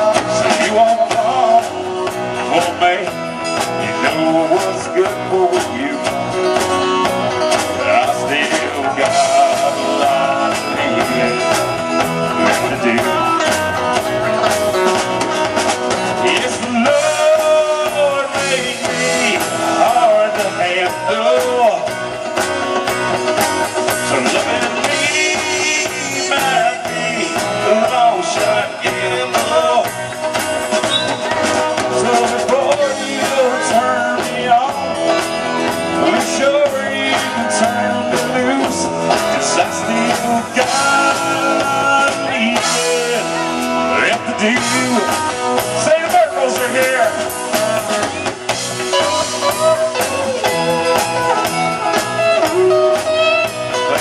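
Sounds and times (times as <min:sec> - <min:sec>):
country-rock band playing: 0:00.0 - 0:54.0.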